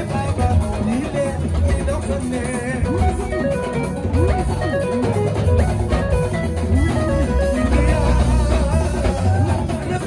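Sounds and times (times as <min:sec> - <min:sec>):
live band music: 0:00.0 - 0:10.0.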